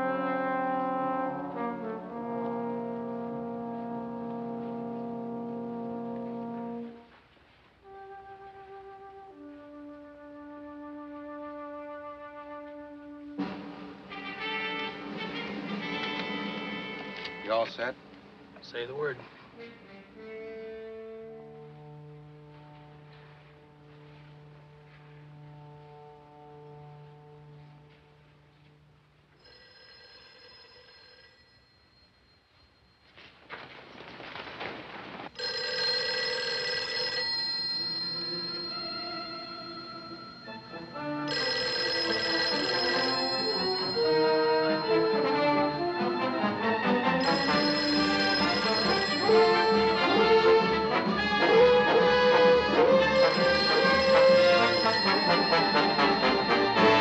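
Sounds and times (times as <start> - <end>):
brass: 0.0 - 18.0, 19.5 - 28.8, 42.4 - 57.0
desk telephone bell ringing: 29.4 - 33.2, 35.4 - 52.3, 52.9 - 57.0.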